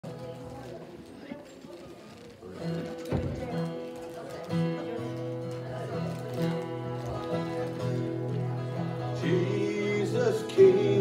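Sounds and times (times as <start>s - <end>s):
acoustic guitar strumming: 2.6s - 11.0s.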